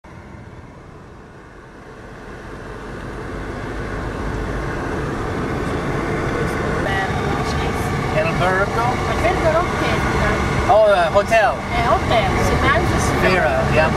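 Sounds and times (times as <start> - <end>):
car engine and road noise: 0.0 - 13.9.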